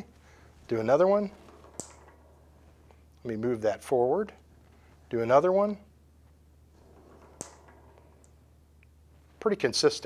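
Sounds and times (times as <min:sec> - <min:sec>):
metal ball rolling down ramp: 0:00.6 - 0:04.4, 0:06.6 - 0:09.4
metal ball striking balls click: 0:00.7 - 0:04.4, 0:06.8 - 0:09.0.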